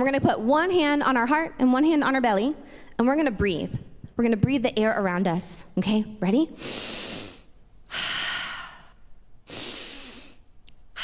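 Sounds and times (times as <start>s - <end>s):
woman breathing deeply: 6.6s - 11.0s.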